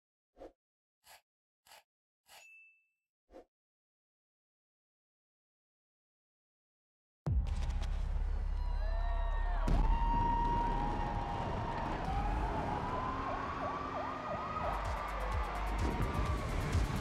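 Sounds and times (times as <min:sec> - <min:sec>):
low drone of film score: 0:07.4 - 0:17.0
sirens wailing and yelping: 0:10.2 - 0:17.0.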